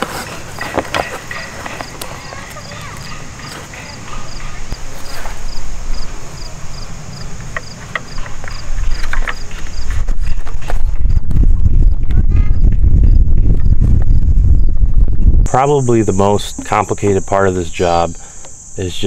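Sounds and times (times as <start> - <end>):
cricket chirping: 0.0 - 19.0.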